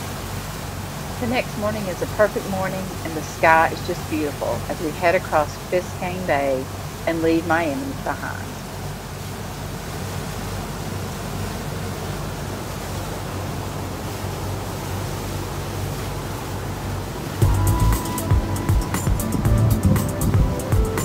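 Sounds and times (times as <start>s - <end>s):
motorboat engine drone: 0.0s - 21.0s
rushing water: 0.0s - 21.0s
background music with a beat: 17.4s - 21.0s
wind noise: 17.4s - 21.0s.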